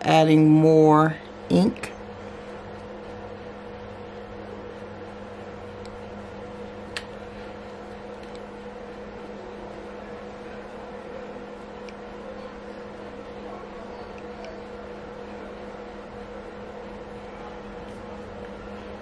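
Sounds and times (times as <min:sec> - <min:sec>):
machine hum: 0:00.0 - 0:19.0.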